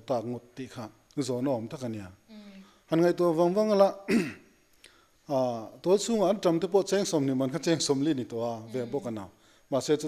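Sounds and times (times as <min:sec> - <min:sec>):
person clearing throat: 0:04.1 - 0:04.5
person talking: 0:06.2 - 0:09.3.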